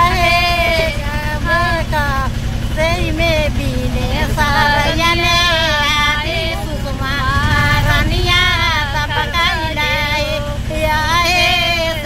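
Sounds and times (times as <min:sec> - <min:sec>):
engine low chug: 0:00.0 - 0:12.0
woman singing: 0:00.0 - 0:12.0.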